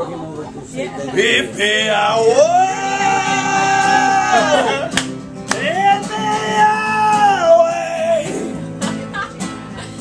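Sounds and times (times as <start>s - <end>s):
acoustic guitar: 0.0s - 10.0s
man singing loudly: 1.2s - 4.9s, 5.6s - 8.4s.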